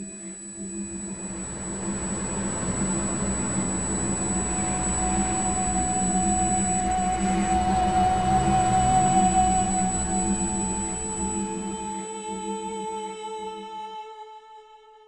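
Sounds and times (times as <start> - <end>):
high sustained tone: 0.0 - 13.2
ambient drone music: 0.1 - 13.2.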